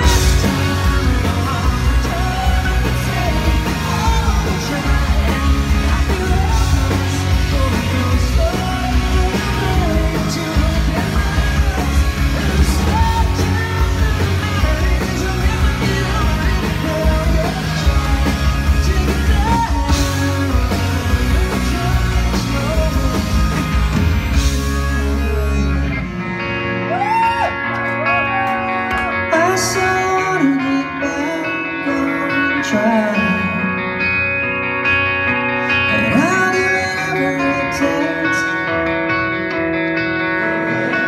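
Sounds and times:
person singing: 0.0 - 34.3, 34.9 - 39.2
bass guitar: 0.0 - 41.0
drums: 0.0 - 41.0
held guitar chords: 0.0 - 41.0
rock band playing live: 0.0 - 41.0.

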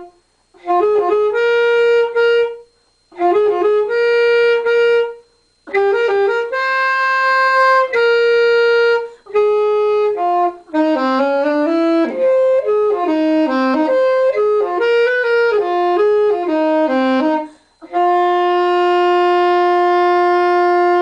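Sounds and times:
saxophone playing jazz melody: 0.0 - 21.0.

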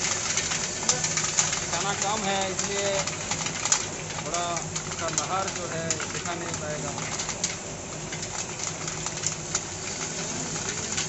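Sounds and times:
grains clicking on mesh: 0.0 - 11.0
grains rattling on a sieve: 0.0 - 11.0
machine humming: 0.0 - 11.0.

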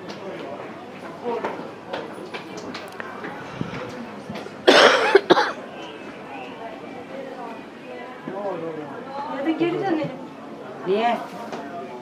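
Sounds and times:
faint background chatter: 0.0 - 12.0
person coughing: 4.6 - 5.6.

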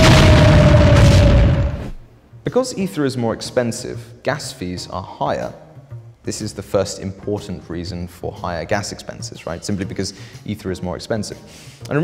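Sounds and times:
explosion boom: 0.0 - 2.1.

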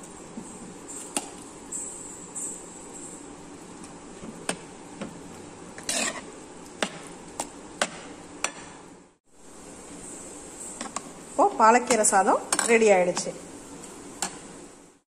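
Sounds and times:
steady hiss: 0.0 - 15.0
spoon stirring in a pan: 3.8 - 8.8
spoon scraping pan: 5.8 - 6.4.

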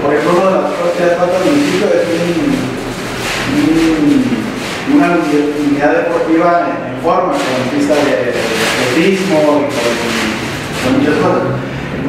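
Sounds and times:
man's drawn-out hesitation sounds: 0.0 - 11.7.

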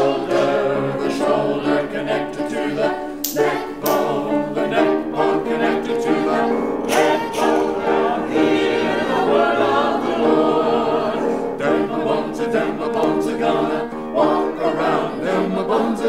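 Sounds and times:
church choir singing: 0.0 - 16.0.

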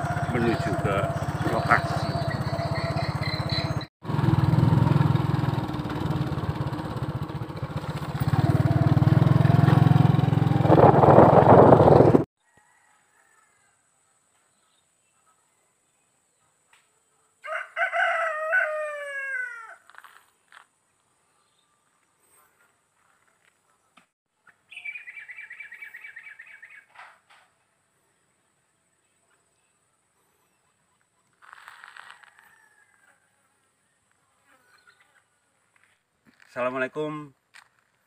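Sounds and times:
rooster crowing: 12.4 - 13.9, 17.4 - 19.9, 31.6 - 33.6.

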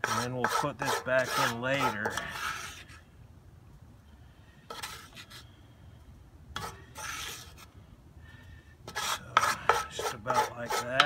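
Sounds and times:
wooden spoon scraping a pot: 0.0 - 3.0, 4.7 - 5.5, 6.6 - 7.7, 8.9 - 11.0.

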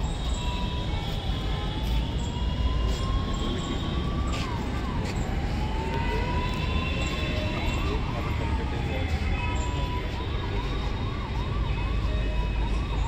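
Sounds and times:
siren wailing: 0.0 - 13.0.

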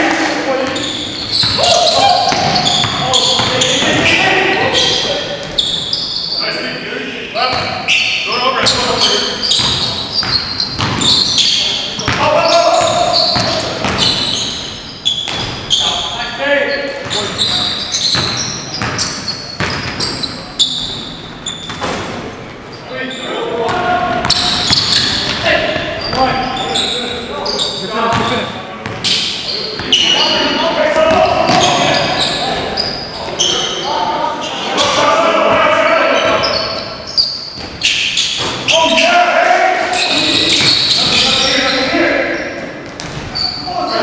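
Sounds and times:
players calling out: 0.0 - 21.7, 22.6 - 44.0
sneakers squeaking: 0.0 - 44.0
basketball bouncing on wooden court: 0.6 - 4.2, 9.5 - 15.6, 17.0 - 20.2, 23.6 - 26.3, 31.0 - 32.2, 42.8 - 43.5
basketball bouncing on wooden floor: 2.3 - 4.1, 9.6 - 11.2, 12.8 - 14.3, 42.8 - 43.4.

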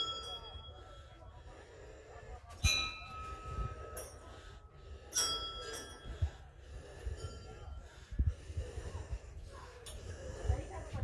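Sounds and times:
small bells ringing: 0.0 - 1.2, 2.6 - 7.8.

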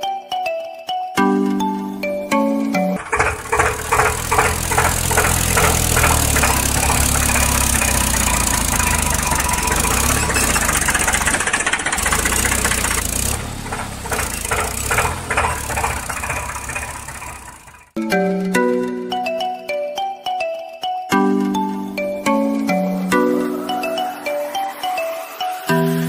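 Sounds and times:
tractor engine knocking chug: 3.0 - 18.0.

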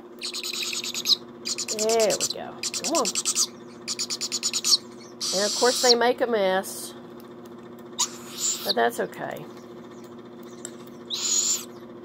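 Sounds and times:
steady low hum: 0.0 - 12.0
owl chick raspy hissing call: 2.6 - 6.0, 8.0 - 8.8, 11.1 - 11.7.

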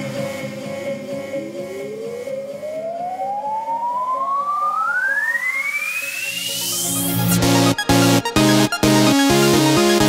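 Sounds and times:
low rhythmic dance beat: 0.0 - 10.0
rising siren-like synth tone: 1.7 - 7.7.

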